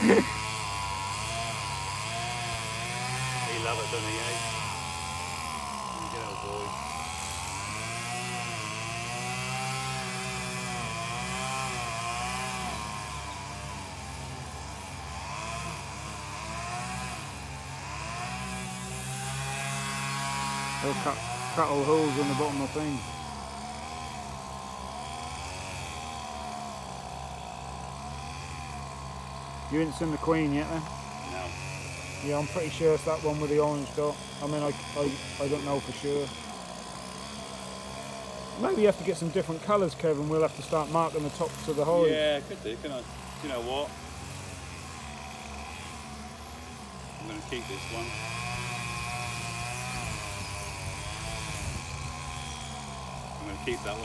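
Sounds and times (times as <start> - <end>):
petrol strimmer engine running: 0.0 - 54.0.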